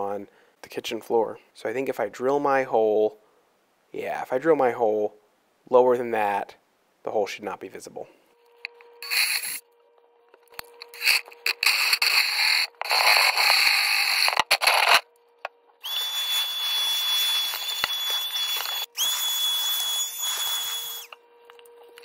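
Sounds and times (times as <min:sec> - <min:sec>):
cordless drill boring wood: 0:15.8 - 0:21.2
vacuum cleaner whining: 0:15.8 - 0:22.0.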